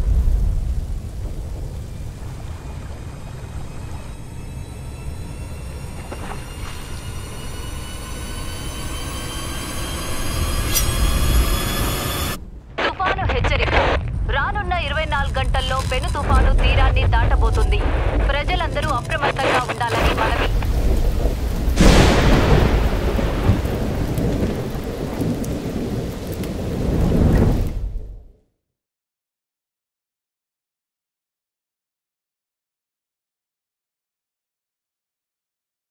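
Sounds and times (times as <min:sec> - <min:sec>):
steady rain: 0:00.0 - 0:12.9, 0:14.8 - 0:28.1
low rumble: 0:00.0 - 0:28.3
high squealing tones: 0:03.4 - 0:12.4.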